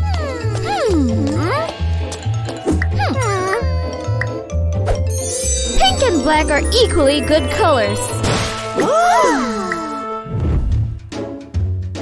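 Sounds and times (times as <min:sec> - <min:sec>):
cartoon music with bass beat: 0:00.0 - 0:08.2.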